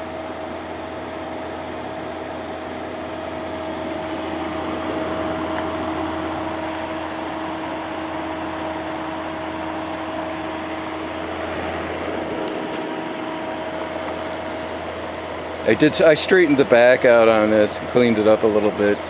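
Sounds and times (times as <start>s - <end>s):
air conditioner humming: 0.0s - 19.0s.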